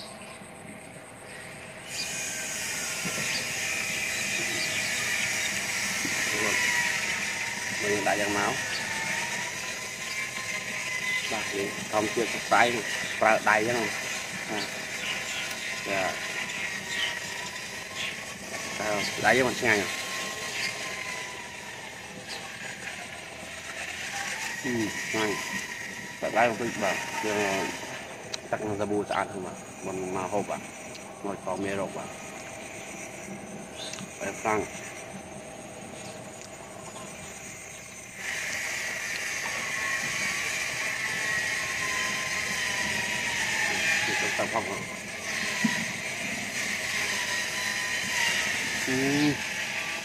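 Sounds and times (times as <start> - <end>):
steady background hum: 0.0 - 50.0
high-pitched hiss: 48.8 - 49.4.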